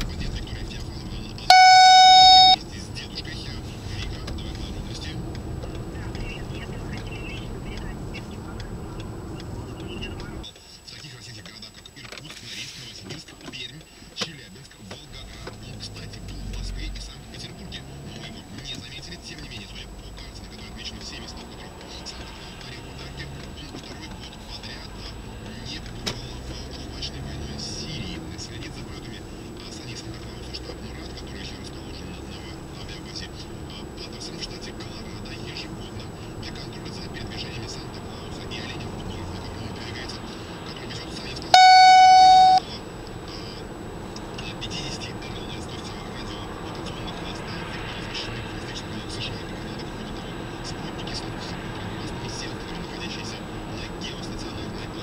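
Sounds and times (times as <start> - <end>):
car road and engine noise: 0.0 - 55.0
electronic alert beep: 1.5 - 2.6, 41.5 - 42.6.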